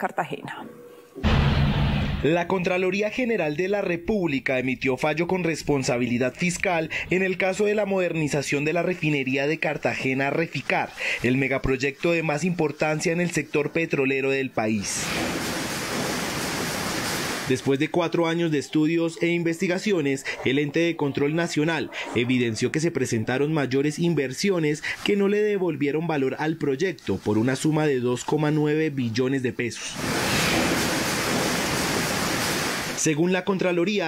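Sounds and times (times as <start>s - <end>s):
steady rushing noise: 15.0s - 17.6s, 30.0s - 33.0s.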